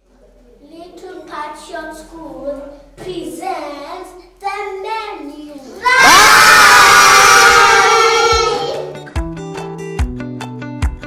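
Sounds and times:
children shouting and cheering: 4.5s - 9.1s.

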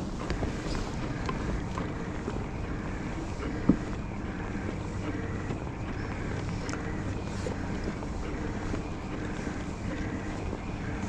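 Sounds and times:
electric pedal drive humming: 0.0s - 11.0s.

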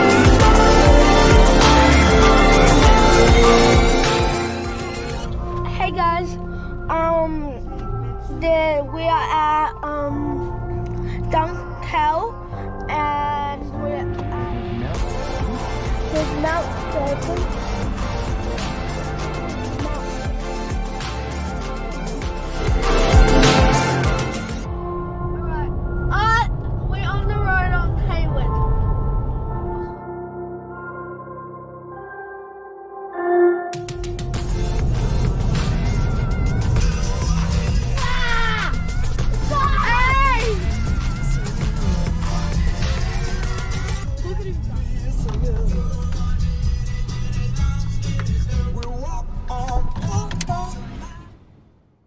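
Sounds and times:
car road and engine rumble: 0.0s - 29.8s, 33.9s - 52.0s
music: 0.0s - 51.8s.

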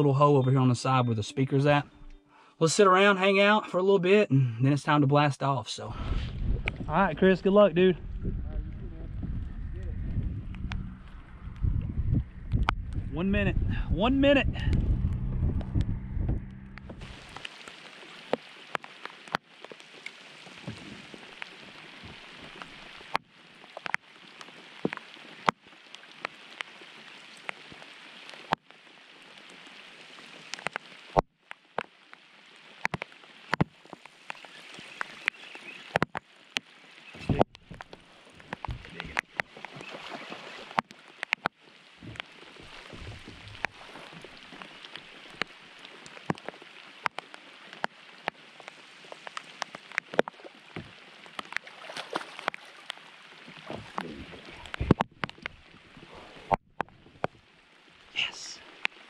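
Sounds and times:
steady rain hiss: 0.3s - 59.0s
low bumps: 5.8s - 17.5s, 37.2s - 39.4s, 42.0s - 44.6s.

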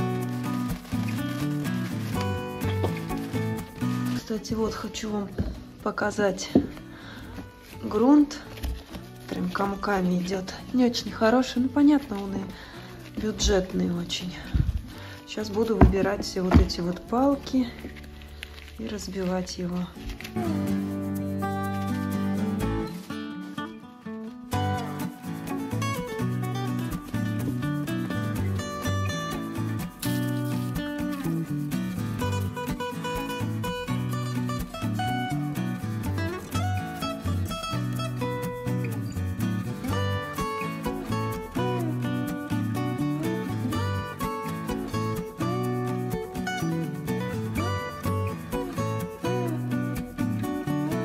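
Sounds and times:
acoustic guitar background music: 0.0s - 51.0s.

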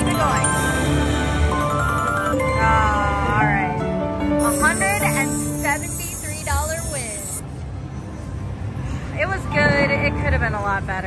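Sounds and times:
slot machine win music: 0.0s - 7.4s.

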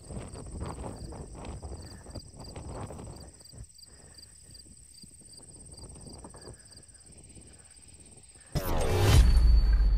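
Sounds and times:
wind rumble on microphone: 0.0s - 8.3s.

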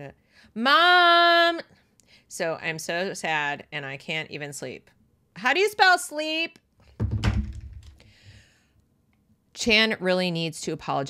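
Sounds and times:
low rumbling thump: 7.0s - 8.0s.

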